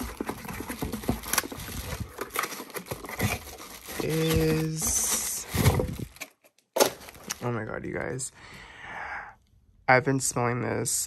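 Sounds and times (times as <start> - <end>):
cardboard rustling and scraping: 0.0 - 7.5.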